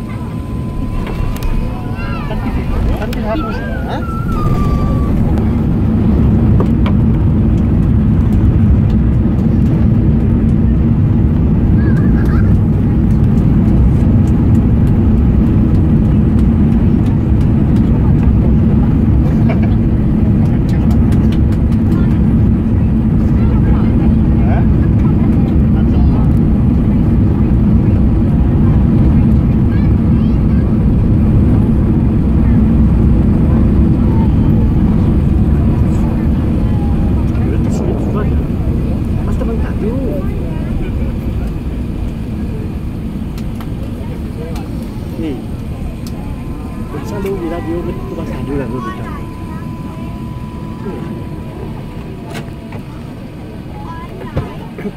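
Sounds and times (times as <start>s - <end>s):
low engine roar: 0.0s - 54.9s
runway rumble: 0.0s - 54.9s.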